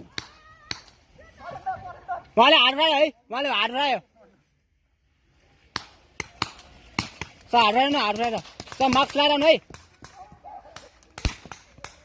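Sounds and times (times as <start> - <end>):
paintball marker firing: 5.7 - 12.0.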